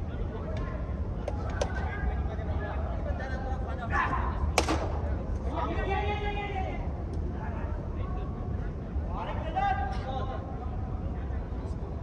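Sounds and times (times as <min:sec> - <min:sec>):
cricket bat striking ball: 0:01.3 - 0:01.8, 0:04.6 - 0:05.1.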